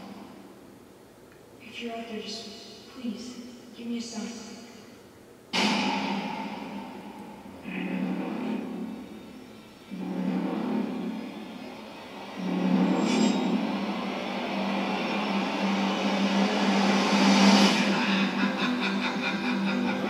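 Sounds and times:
low drone: 0.0s - 0.8s, 5.5s - 20.0s
rising whoosh: 10.0s - 18.6s.

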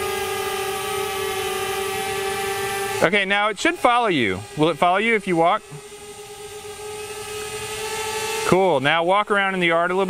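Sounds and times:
quadcopter motors whining: 0.0s - 10.0s.

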